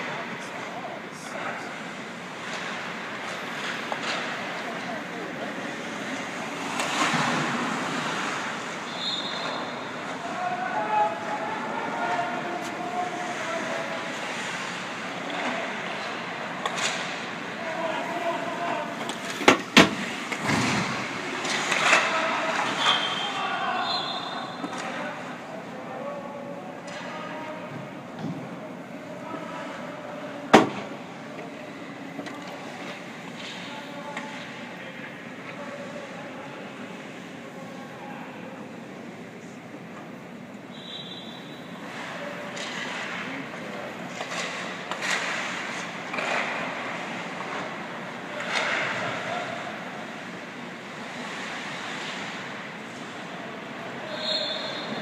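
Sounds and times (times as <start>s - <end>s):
sticks striking pucks: 18.9s - 23.2s, 44.1s - 49.7s.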